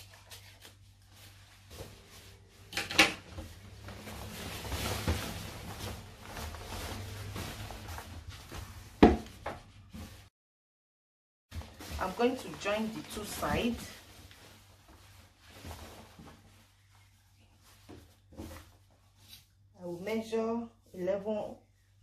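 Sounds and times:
fabric rustling: 0.0 - 2.7, 3.3 - 10.3, 11.5 - 20.4.

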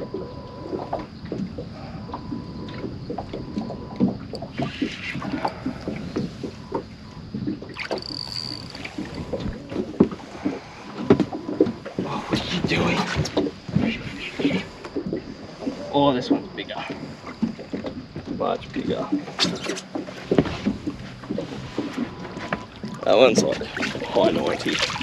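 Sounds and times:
fish splashing: 7.7 - 9.6, 22.8 - 25.0.

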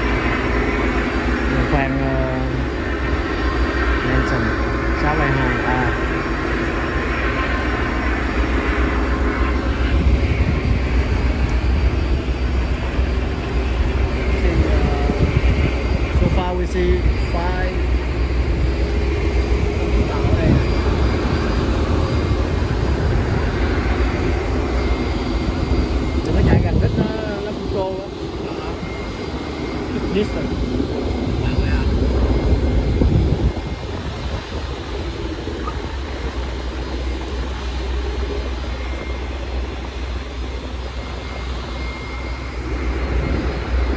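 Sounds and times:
outboard motors running: 0.0 - 43.9.

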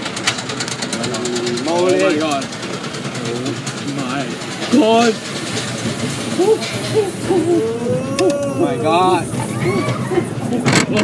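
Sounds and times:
young men crying out: 6.4 - 10.5.

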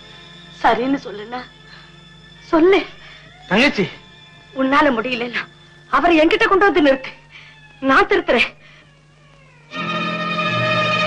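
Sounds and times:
orchestral score with strings: 9.7 - 11.0.

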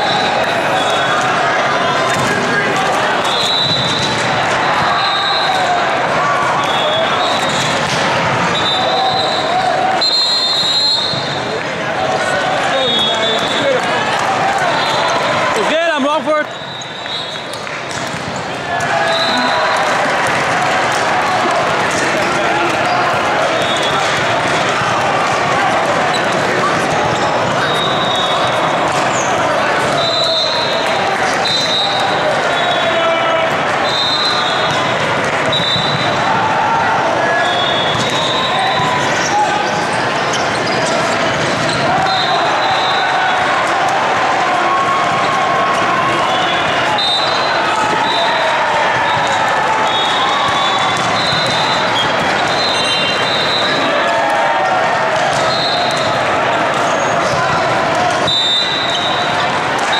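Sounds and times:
many people talking: 0.0 - 59.9
volleyballs hit and bouncing: 0.0 - 59.9.

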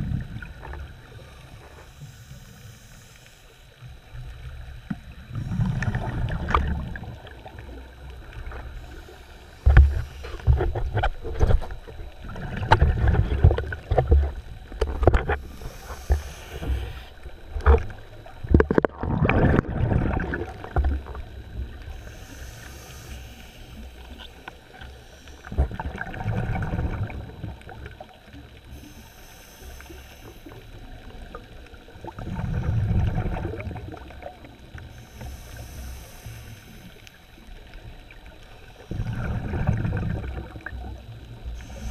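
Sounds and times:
underwater knocks and clicks: 4.8 - 7.6, 9.6 - 21.3
diver's exhaled bubbles: 9.7 - 21.2, 25.5 - 27.6, 38.9 - 40.8.

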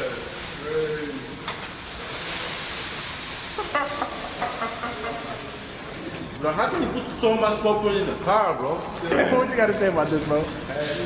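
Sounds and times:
popcorn spilling and rustling: 0.0 - 8.5
faint voices or laughter: 3.5 - 5.7.

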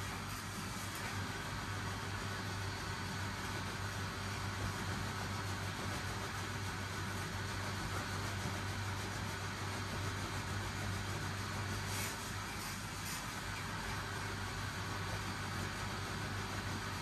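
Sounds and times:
blower fan humming: 0.0 - 17.0.

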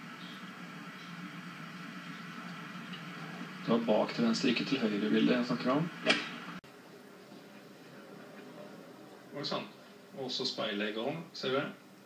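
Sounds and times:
faint background noise: 0.0 - 12.0.

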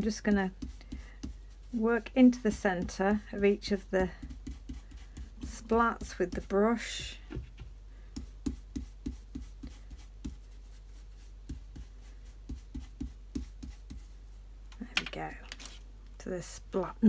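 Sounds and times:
stencil brush dabbing taps: 0.0 - 14.2.

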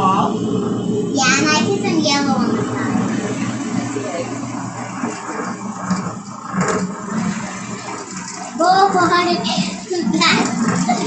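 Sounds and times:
food processor motor running: 0.0 - 11.0.

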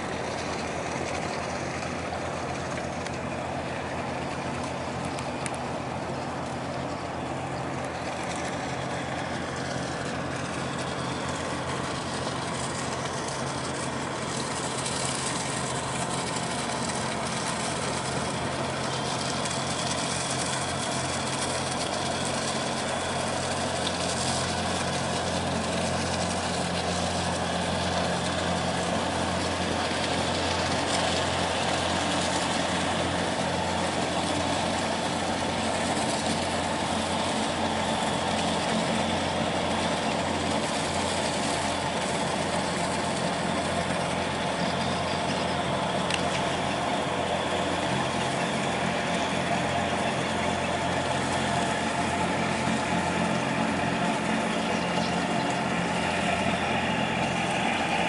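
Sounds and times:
barge diesel engine drone: 0.0 - 58.0.

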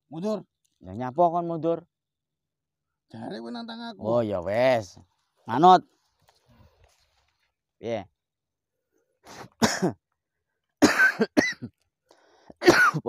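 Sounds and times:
man coughing: 9.4 - 10.0, 10.8 - 11.7, 12.6 - 13.0.

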